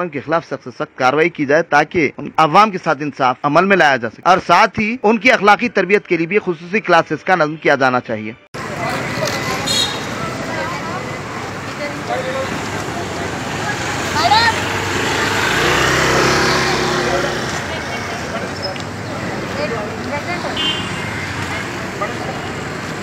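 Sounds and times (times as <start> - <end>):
street traffic: 8.5 - 23.0
vehicle engine passing: 8.6 - 23.0.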